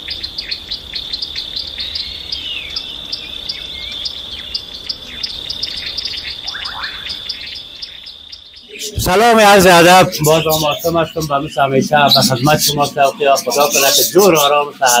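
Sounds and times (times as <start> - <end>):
small birds chirping: 0.0 - 15.0
high-pitched insect drone: 0.1 - 15.0
falling whistled bird calls: 1.2 - 15.0.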